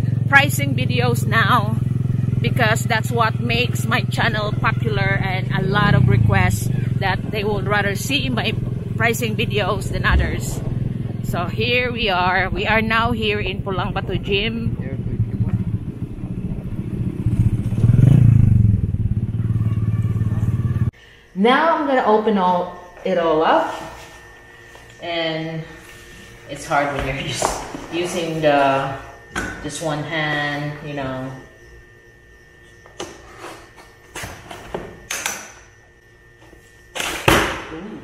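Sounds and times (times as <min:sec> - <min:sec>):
small motorcycle engine running: 0:00.0 - 0:20.9.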